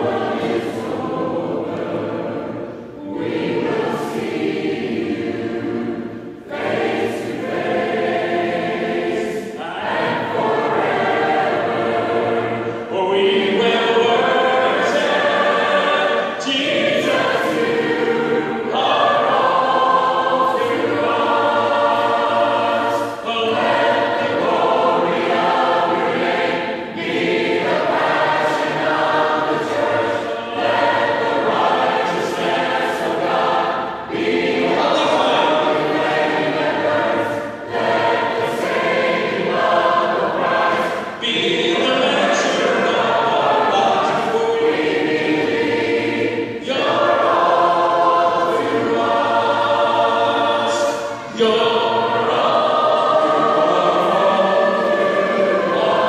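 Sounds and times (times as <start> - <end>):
group singing in harmony: 0.0 - 56.0.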